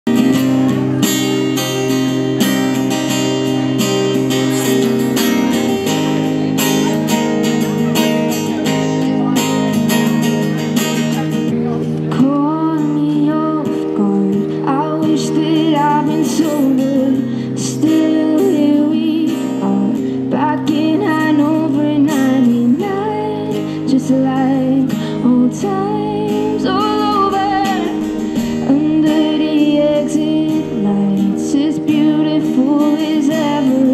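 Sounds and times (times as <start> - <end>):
acoustic guitar strumming: 0.0 - 33.9
woman singing into a microphone: 12.0 - 33.9.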